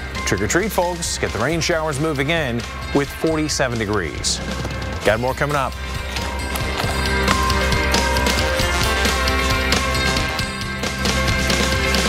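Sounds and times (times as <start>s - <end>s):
instrumental music with steady beat: 5.7s - 12.0s.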